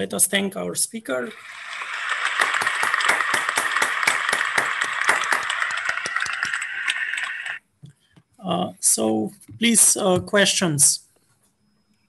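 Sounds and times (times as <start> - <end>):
applause: 1.3 - 7.6.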